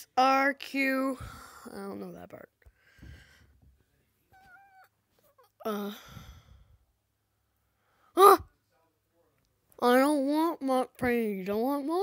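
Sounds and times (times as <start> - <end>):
person sighing breath: 5.6 - 6.8.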